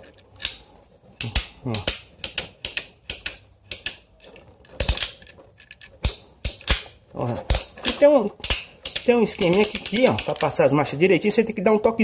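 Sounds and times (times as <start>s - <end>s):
bicycle shifter ratchet clicks: 8.4s - 10.6s.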